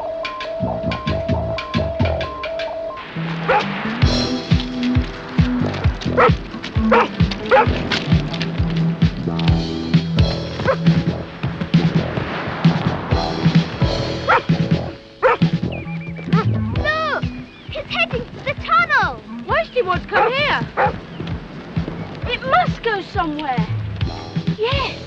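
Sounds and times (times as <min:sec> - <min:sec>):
background music: 0:00.0 - 0:25.0
dog barking: 0:03.5 - 0:03.7, 0:06.2 - 0:07.8, 0:10.6 - 0:10.9, 0:14.2 - 0:14.5, 0:15.2 - 0:15.5, 0:16.3 - 0:16.5, 0:20.1 - 0:21.0.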